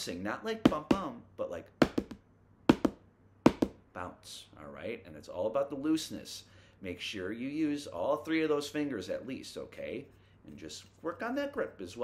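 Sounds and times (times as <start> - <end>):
drumsticks tapping double strokes: 1.8 - 3.8.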